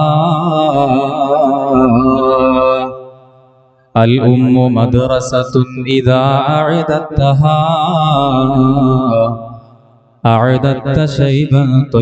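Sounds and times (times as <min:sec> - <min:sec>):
man chanting through a microphone: 0:00.0 - 0:03.1, 0:04.0 - 0:09.6, 0:10.2 - 0:12.0.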